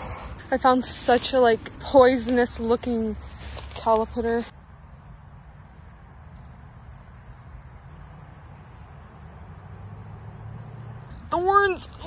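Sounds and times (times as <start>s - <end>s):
insects trilling: 0.0s - 11.8s.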